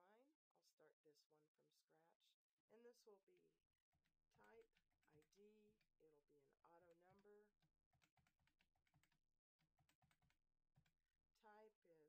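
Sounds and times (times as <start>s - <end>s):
computer keyboard typing: 4.4s - 5.8s, 6.8s - 11.0s.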